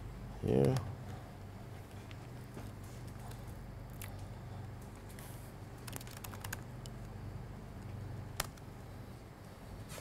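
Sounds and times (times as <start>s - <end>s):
laptop keyboard typing: 5.8s - 6.9s, 8.4s - 8.7s.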